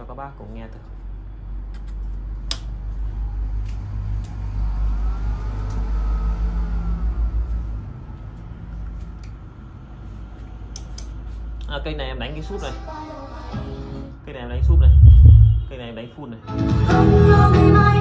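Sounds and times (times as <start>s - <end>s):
deep bass rumble through speakers: 14.5s - 15.8s.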